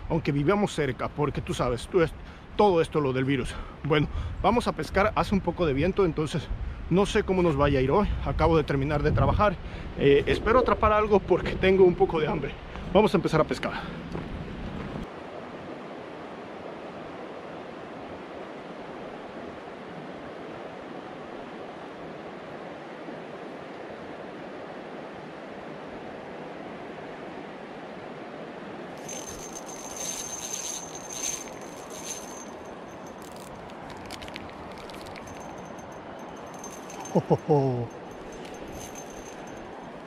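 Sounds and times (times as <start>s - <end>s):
light breeze: 0.0s - 40.0s
stream flowing: 15.1s - 40.0s.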